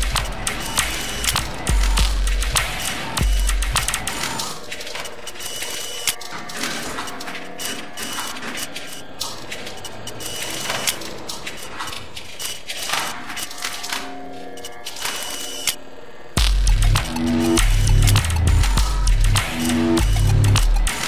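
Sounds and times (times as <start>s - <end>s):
electronic music clicks and ticks: 0.0s - 15.8s, 16.4s - 21.0s.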